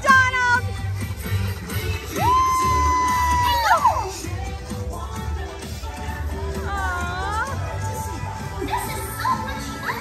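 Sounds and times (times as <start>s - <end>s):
parade music: 0.0s - 10.0s.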